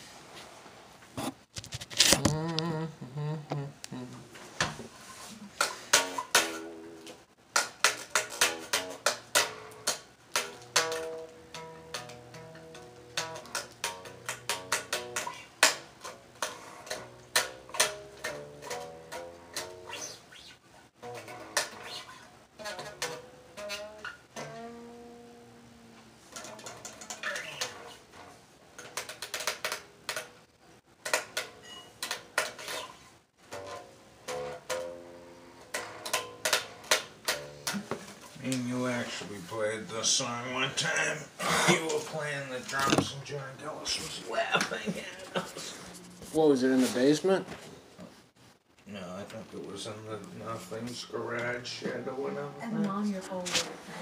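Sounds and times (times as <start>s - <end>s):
string clicking against frets: 5.6s - 20.2s, 21.0s - 24.9s, 26.3s - 32.9s, 33.5s - 37.9s
electric bass guitar plucked: 8.1s - 15.4s, 16.0s - 20.2s, 22.6s - 28.3s, 33.5s - 37.9s.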